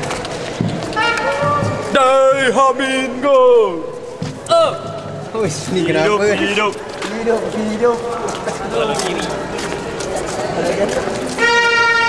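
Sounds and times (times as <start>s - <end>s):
crowd noise: 0.0s - 12.0s
young men talking: 1.8s - 11.4s.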